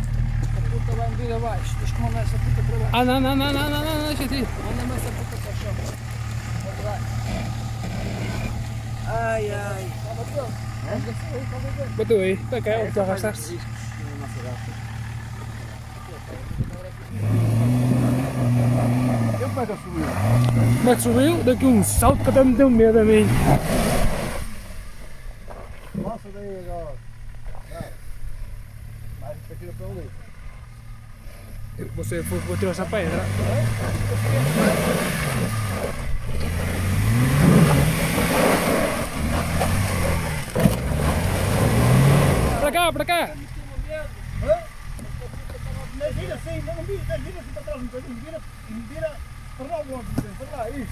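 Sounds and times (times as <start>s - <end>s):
car engine idling: 0.0s - 50.9s
person calling out: 3.0s - 4.6s.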